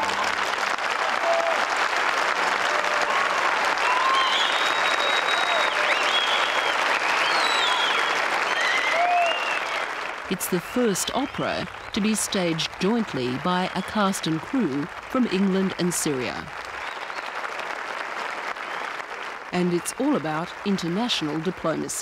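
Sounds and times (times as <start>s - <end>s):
audience applauding: 0.0s - 22.0s.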